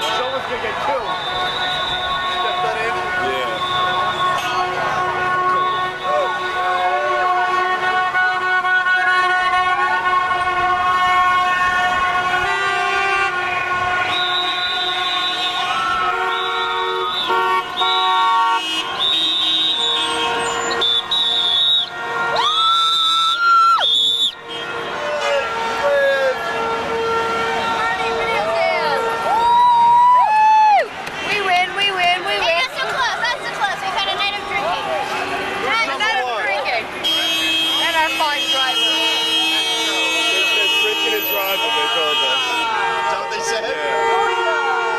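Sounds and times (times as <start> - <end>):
car horns honking: 0.0 - 29.5, 31.1 - 44.9
loud horn blast: 1.0 - 22.6, 24.2 - 29.4, 36.9 - 44.9
people yelling and whooping: 27.9 - 31.1.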